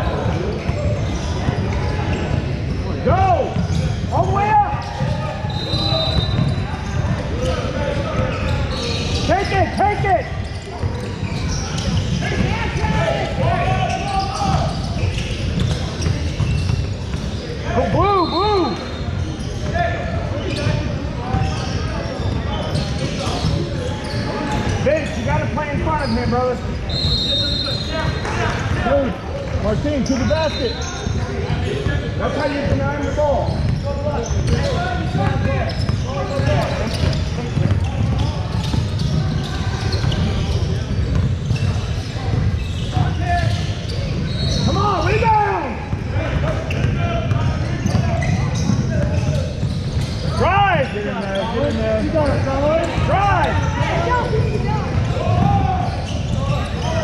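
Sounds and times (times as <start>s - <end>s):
voices of players and spectators: 0.0s - 57.0s.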